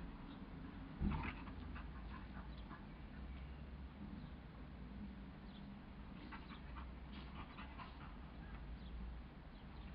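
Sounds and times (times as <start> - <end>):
dogs panting: 1.1 - 3.3, 6.2 - 8.4.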